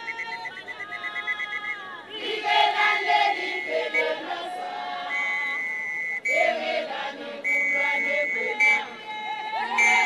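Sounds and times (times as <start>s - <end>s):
women singing chant in chorus: 0.0s - 10.0s.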